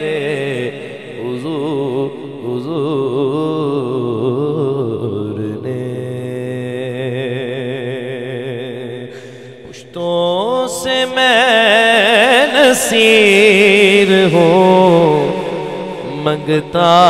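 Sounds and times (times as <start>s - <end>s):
man singing with vibrato: 0.0s - 17.0s.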